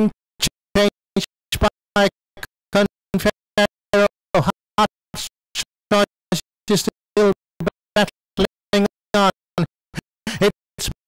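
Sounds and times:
chopped voice snippets: 0.0s - 11.0s.

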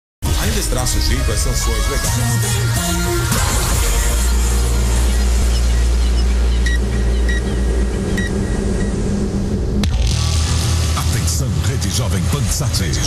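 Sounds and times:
deep steady rumble: 0.3s - 13.0s
high electronic beeps: 4.9s - 9.1s.

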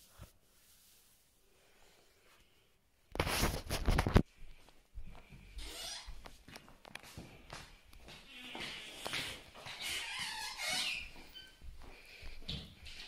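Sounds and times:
fabric rustling and rubbing: 0.0s - 1.6s, 3.1s - 4.3s.

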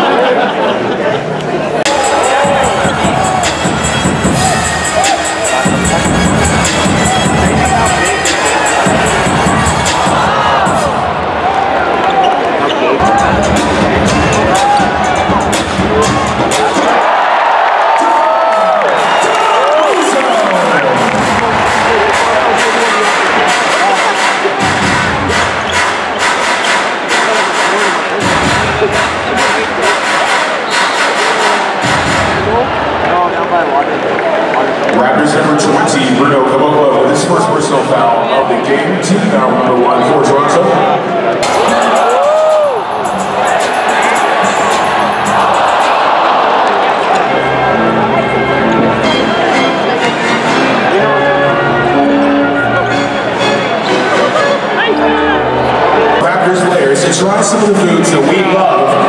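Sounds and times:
crowd cheering and shouting: 0.0s - 59.0s
arena music with steady beat: 1.8s - 11.6s, 13.0s - 17.3s, 20.7s - 33.2s, 38.6s - 59.0s.

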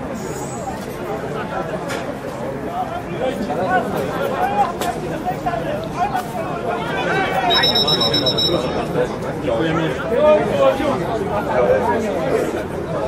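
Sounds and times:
spectators talking: 0.0s - 13.0s
referee's whistle blast: 7.5s - 8.9s.

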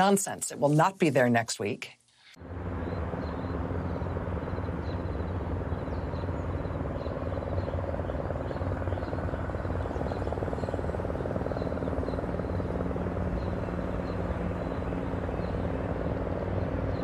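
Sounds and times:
helicopter rotor and engine drone: 2.4s - 17.0s.

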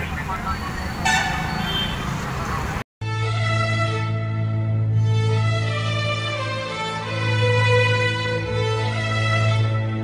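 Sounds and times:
street traffic: 0.0s - 2.9s
vehicle horn: 1.0s - 2.2s.

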